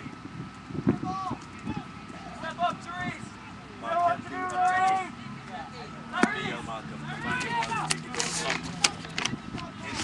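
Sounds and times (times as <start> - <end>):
people calling out and talking: 0.0 - 10.0.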